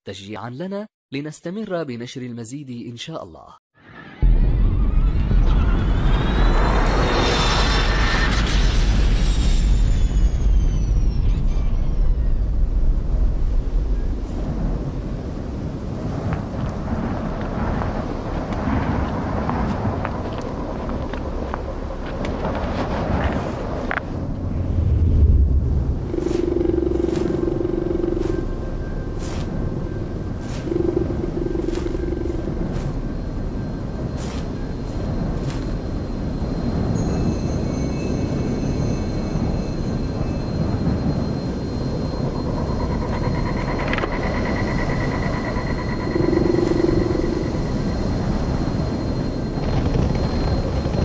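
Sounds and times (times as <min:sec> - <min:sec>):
deep rumble: 0:04.2 - 0:51.0.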